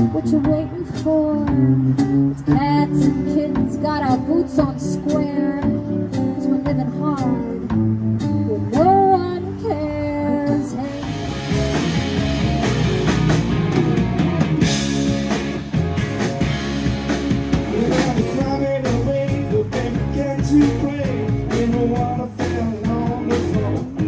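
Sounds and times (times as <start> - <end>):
guitar duo with kick drum: 0.0 - 24.0
rock band playing: 0.0 - 24.0.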